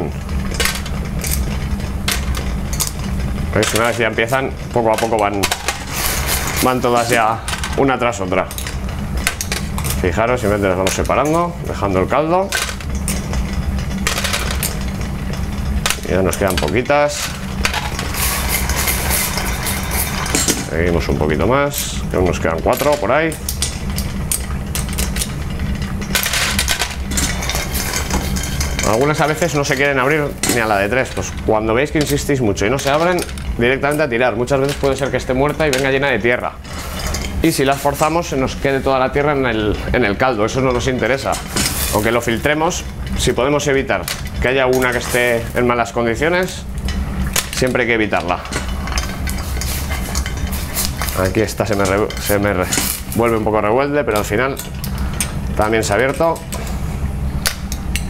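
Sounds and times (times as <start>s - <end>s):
low kitchen hum: 0.0s - 58.0s
steady low rumble: 0.0s - 58.0s
metal utensils scraping a saucepan: 2.3s - 11.5s, 15.9s - 43.4s, 44.0s - 56.8s
metal tongs clinking: 44.0s - 53.5s.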